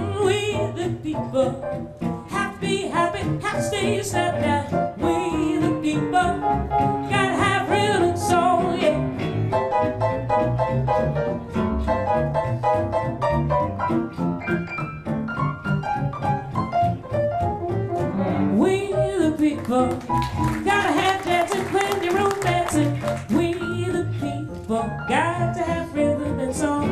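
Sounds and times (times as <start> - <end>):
woman singing: 0.0 - 9.2, 18.5 - 26.9
archtop guitar: 0.0 - 26.9
piano: 0.0 - 26.9
upright double bass: 0.0 - 26.9.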